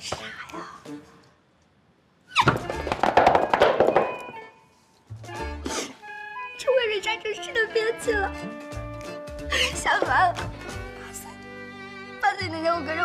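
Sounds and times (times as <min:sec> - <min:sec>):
background music: 0:00.0 - 0:01.4, 0:02.4 - 0:13.0.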